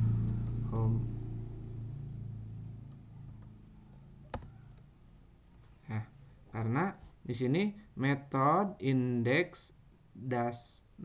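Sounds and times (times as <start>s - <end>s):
low rumbling hum: 0.0s - 5.2s.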